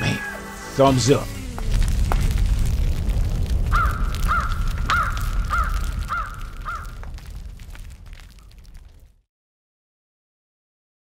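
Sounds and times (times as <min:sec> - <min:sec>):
crackles: 0:00.2 - 0:09.3
low rumble: 0:01.0 - 0:09.2
crow cawing: 0:03.6 - 0:07.1.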